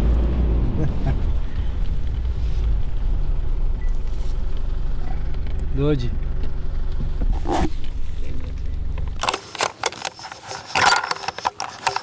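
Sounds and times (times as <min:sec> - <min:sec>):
car rumble from inside cabin: 0:00.0 - 0:09.2
metallic clicks of rifle handling: 0:09.2 - 0:12.0.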